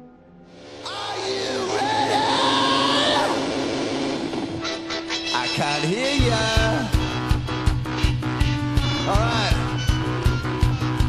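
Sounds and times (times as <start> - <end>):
loud hissing rush: 0.6 - 4.6
wailing sliding tones: 0.6 - 6.0.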